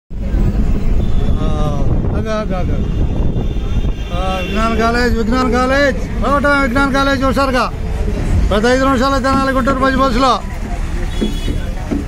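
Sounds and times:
bus rumbling: 0.1s - 12.0s.

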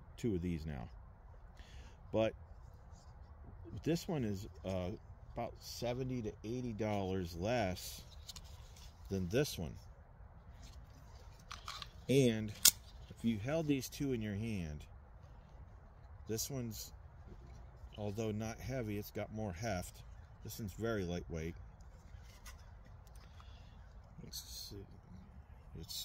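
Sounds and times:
low steady rumble: 0.0s - 26.0s.

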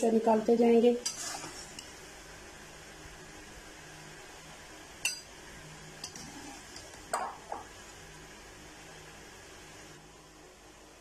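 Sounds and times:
spoon clinking against pot: 5.0s - 5.3s.

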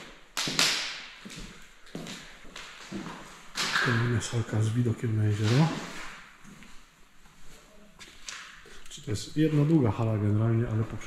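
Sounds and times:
footsteps on parquet floor: 1.2s - 3.7s.

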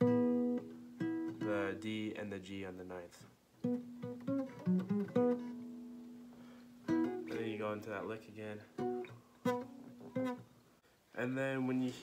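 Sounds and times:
acoustic guitar plucked notes: 0.0s - 2.2s, 3.6s - 10.5s.

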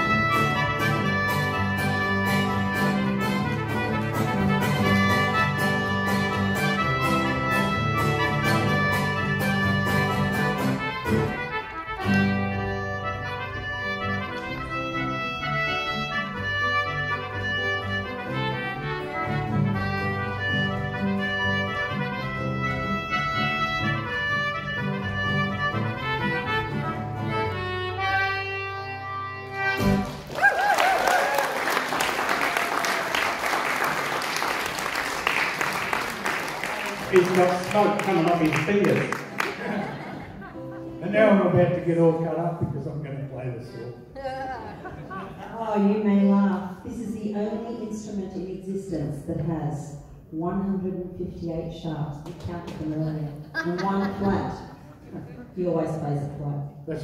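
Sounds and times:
acoustic guitar and concertina: 0.0s - 57.0s
audience applauding: 29.9s - 40.4s.

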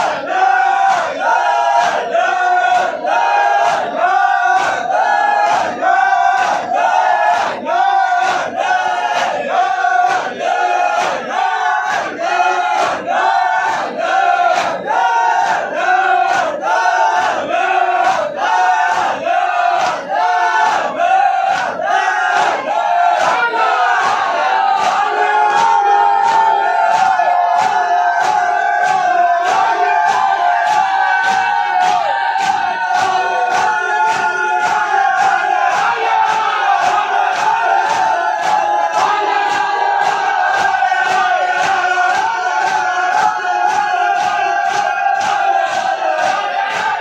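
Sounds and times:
men chanting together: 0.0s - 47.0s.

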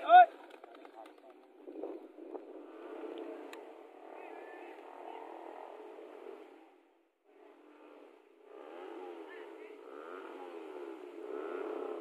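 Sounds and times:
vehicle engines revving: 0.0s - 12.0s.

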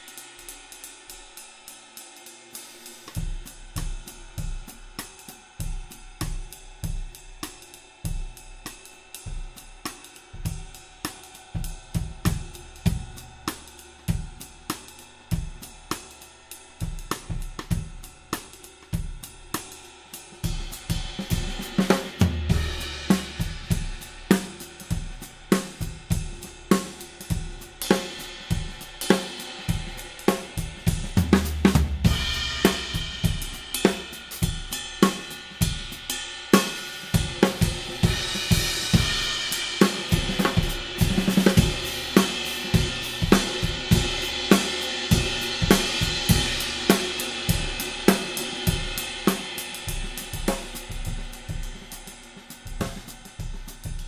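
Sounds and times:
hi-hat: 0.0s - 54.0s
ride cymbal wash: 0.0s - 54.0s
snare drum: 20.5s - 36.0s, 36.6s - 54.0s.

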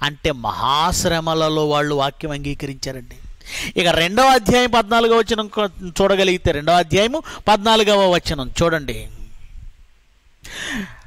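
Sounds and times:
man's intake of breath: 3.2s - 3.8s, 10.4s - 11.0s.

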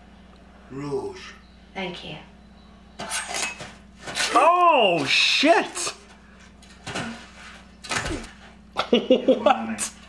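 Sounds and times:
sword blade scrape and clink: 3.0s - 3.6s.

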